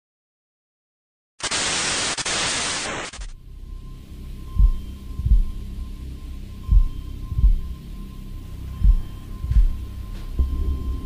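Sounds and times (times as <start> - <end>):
loud static hiss: 1.4 - 3.4.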